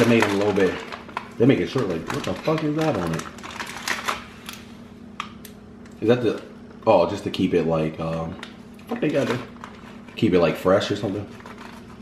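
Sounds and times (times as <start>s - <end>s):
plastic tray and wrapper crinkling: 0.0s - 4.7s, 7.9s - 12.0s
faint steady hum: 0.0s - 12.0s.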